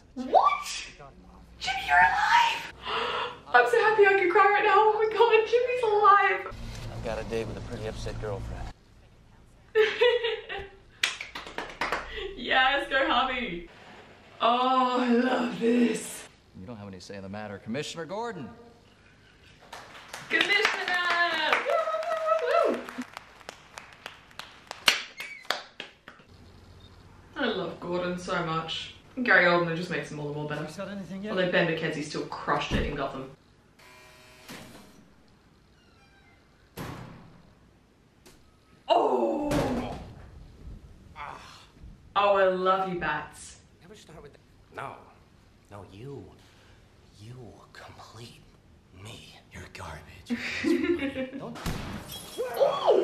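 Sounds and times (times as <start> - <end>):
hand claps: 11.0 - 12.2, 19.6 - 26.3
steel door shutting with thud: 36.8 - 37.5
woman squealing: 52.4 - 53.0.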